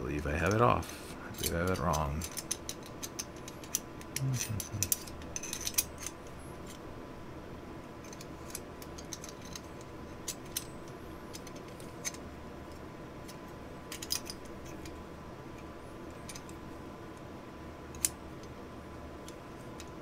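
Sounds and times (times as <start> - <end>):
metal parts clicking and clinking: 1.3 - 6.8, 8.0 - 15.0, 16.1 - 16.6.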